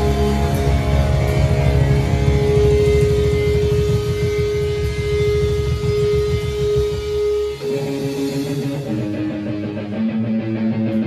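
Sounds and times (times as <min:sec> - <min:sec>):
held electric guitar note: 0:00.0 - 0:11.0
punk rock band playing live: 0:00.0 - 0:11.0.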